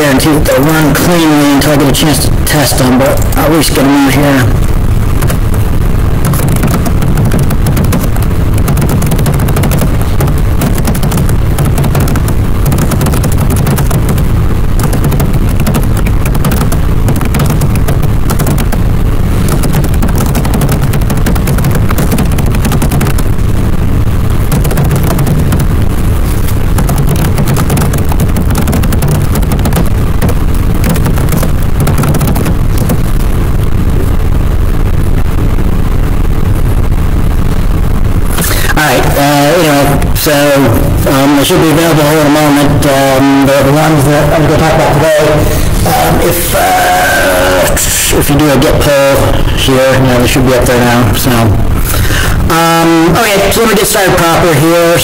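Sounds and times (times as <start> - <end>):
low rumble: 0.0 - 53.1
microphone crackling noise: 0.0 - 53.7.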